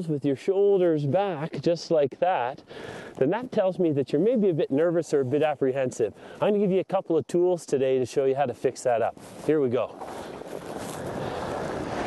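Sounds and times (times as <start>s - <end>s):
skis sliding over snow: 8.8s - 12.0s
wind on microphone: 9.9s - 12.0s.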